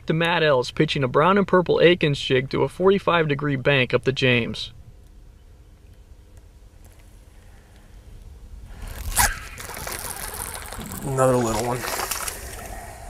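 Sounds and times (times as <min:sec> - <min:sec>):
fish splashing at water surface: 0:09.2 - 0:13.0.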